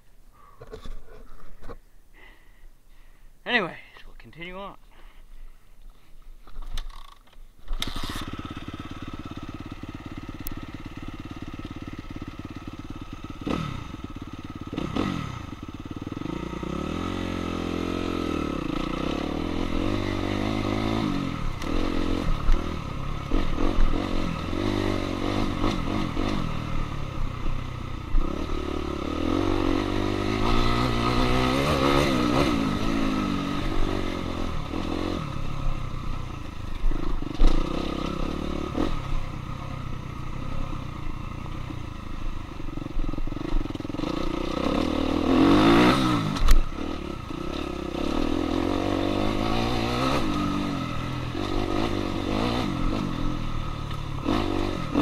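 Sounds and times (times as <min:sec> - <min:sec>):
dirt bike engine revving: 0:07.7 - 0:55.0.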